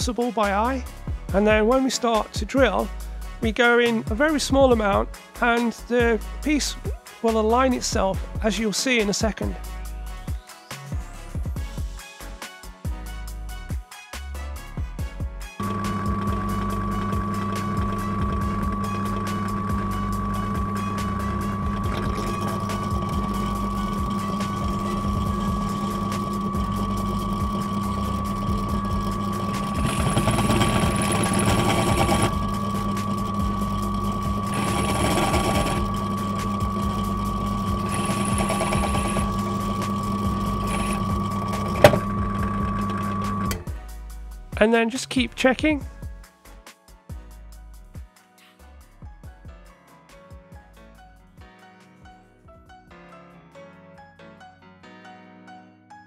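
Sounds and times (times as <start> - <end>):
drill bit grinding into metal: 15.6 - 43.7
drill motor humming: 15.6 - 43.7.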